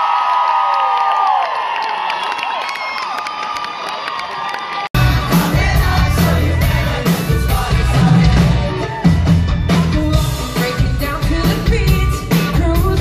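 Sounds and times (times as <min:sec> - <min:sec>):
crowd cheering and screaming: 0:00.0 - 0:09.8
live rock band: 0:05.0 - 0:13.0.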